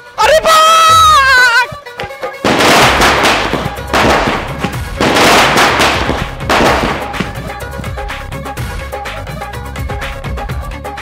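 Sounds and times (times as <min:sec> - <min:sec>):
firecrackers bursting: 0:02.4 - 0:08.4.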